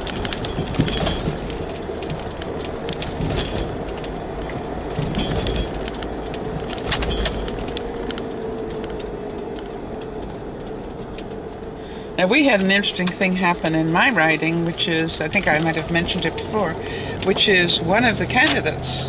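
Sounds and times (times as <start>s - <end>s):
light clicks and rattles: 0.0s - 18.8s
car road and engine noise: 0.0s - 19.0s.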